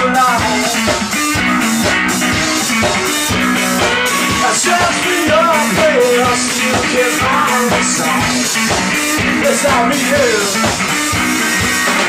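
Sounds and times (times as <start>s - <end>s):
drum kit beat: 0.0s - 12.0s
repeating guitar riff: 0.0s - 12.0s.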